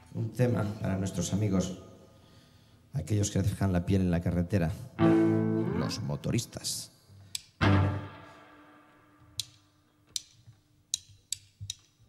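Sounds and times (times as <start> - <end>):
electric guitar chord ringing: 5.0 - 5.9, 7.6 - 8.8
drumsticks clicking together: 7.3 - 7.6, 9.4 - 12.0.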